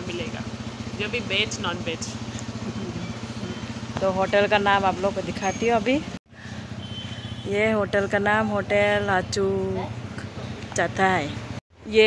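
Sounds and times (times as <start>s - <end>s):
engine idling: 0.0s - 11.6s.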